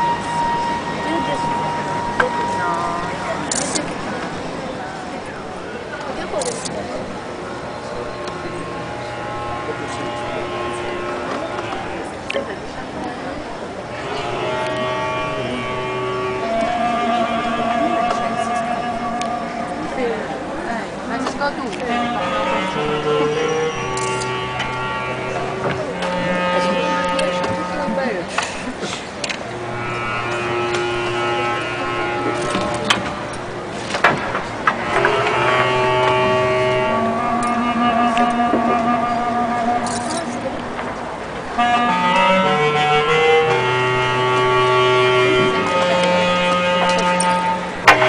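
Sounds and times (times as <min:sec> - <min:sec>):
held background tones: 0:00.0 - 0:48.0
people talking at once: 0:00.0 - 0:48.0.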